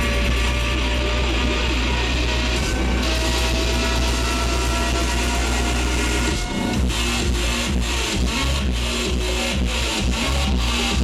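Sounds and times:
electro house dance music: 0.0 - 11.0.

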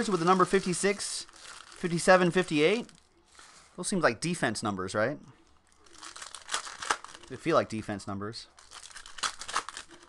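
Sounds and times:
card pack wrapper crinkling and tearing: 0.0 - 3.5, 5.7 - 7.5, 8.6 - 10.0.

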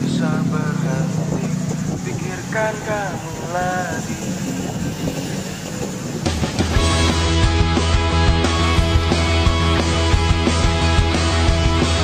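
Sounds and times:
car engines passing: 0.0 - 12.0
motorbike engines passing: 0.0 - 12.0.

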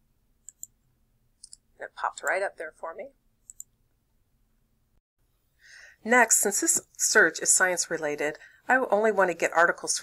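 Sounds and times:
mouse and keyboard clicks: 0.4 - 0.8, 3.4 - 3.7
person speaking: 1.8 - 3.2.

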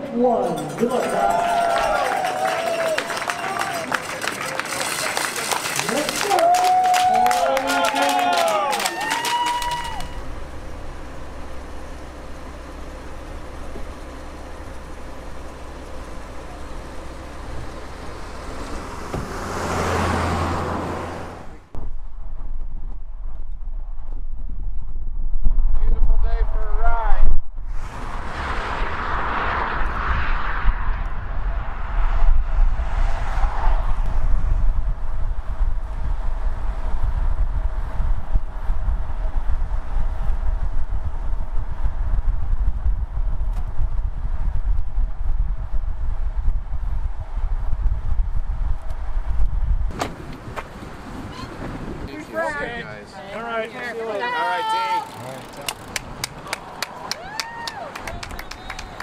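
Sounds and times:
cars passing on highway: 0.0 - 21.8, 27.7 - 59.0
wind rumble on microphone: 21.7 - 52.4.

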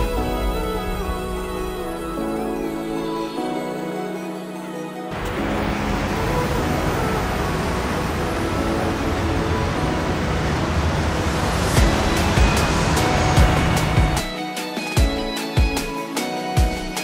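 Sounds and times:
road noise: 5.1 - 14.3
background music with beat: 11.8 - 17.0.

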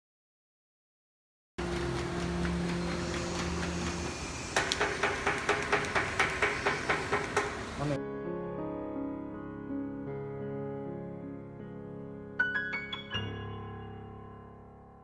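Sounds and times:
piano music: 1.6 - 4.5, 7.5 - 15.0
machine humming: 1.6 - 8.0
sharp machine clicks: 1.8 - 7.6.

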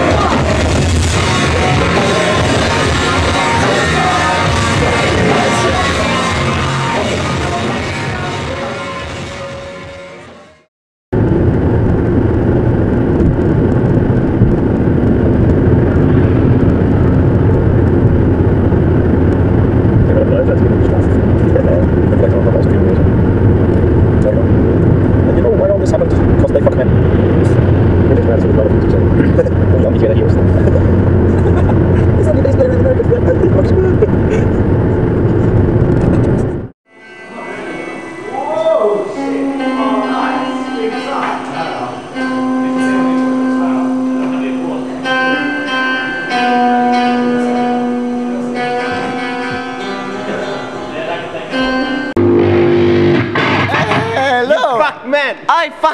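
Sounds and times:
electric guitar long notes: 0.0 - 54.6
road and engine noise inside car: 26.2 - 36.7.

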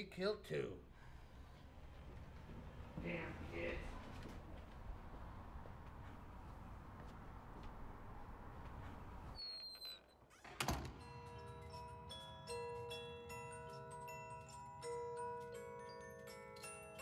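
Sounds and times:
door shutting with a thud: 10.4 - 11.0
slow bell-like melody: 11.0 - 17.0.

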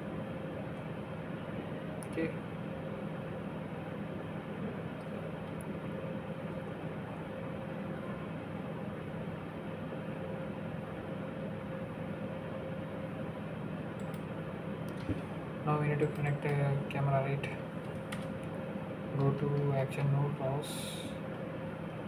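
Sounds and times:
fan-like machine noise: 0.0 - 22.0.

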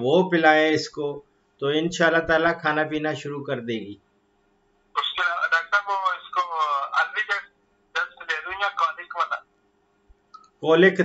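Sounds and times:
person speaking over telephone: 5.0 - 9.4.

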